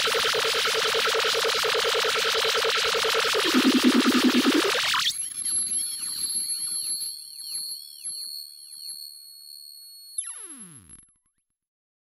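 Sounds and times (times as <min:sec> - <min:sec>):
dense noisy electronic music: 0:03.4 - 0:04.9
high-pitched tones with sweeps: 0:03.4 - 0:10.6.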